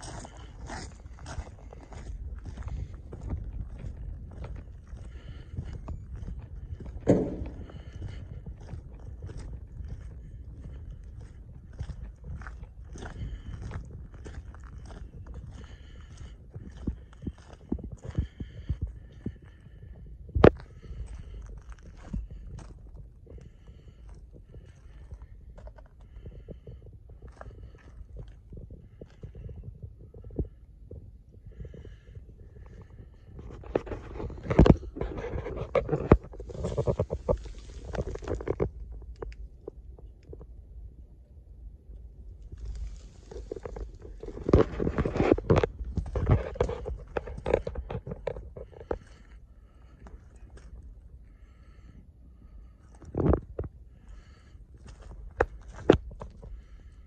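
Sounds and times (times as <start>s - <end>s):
footsteps on gravel: 0.0s - 19.7s, 32.6s - 39.4s, 42.4s - 51.8s, 53.0s - 56.9s
wind rumble on microphone: 0.0s - 57.0s
phone handling rumble and thumps: 6.7s - 8.8s, 32.6s - 40.5s, 42.6s - 49.1s
sharp knock: 7.1s - 7.9s.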